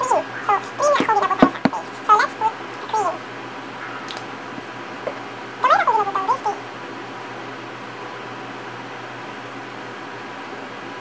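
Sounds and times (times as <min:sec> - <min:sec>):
faint background hum: 0:00.0 - 0:11.0.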